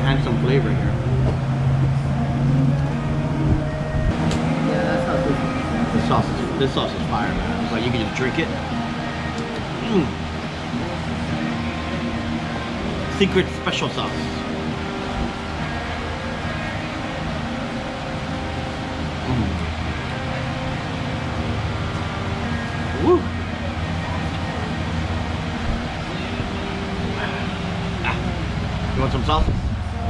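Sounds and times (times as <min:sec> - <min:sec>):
low hum and rumble: 0:00.0 - 0:13.3, 0:14.2 - 0:30.0
rising vocal hum: 0:08.6 - 0:13.1, 0:19.1 - 0:21.2, 0:21.8 - 0:25.2.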